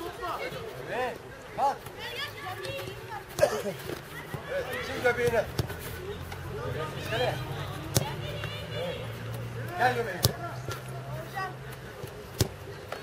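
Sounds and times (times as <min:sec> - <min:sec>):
children's voices calling out: 0:01.9 - 0:05.2
football kicked thuds: 0:05.2 - 0:05.8, 0:10.1 - 0:10.8, 0:12.3 - 0:12.6
balls knocking on ground: 0:07.8 - 0:08.5, 0:09.3 - 0:10.9, 0:11.7 - 0:13.0.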